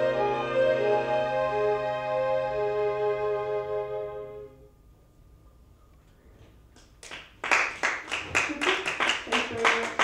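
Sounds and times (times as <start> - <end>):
audience applauding: 7.0 - 10.0.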